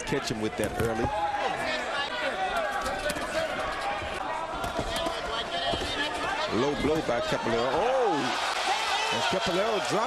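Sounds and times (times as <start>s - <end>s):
arena voices: 1.1s - 10.0s.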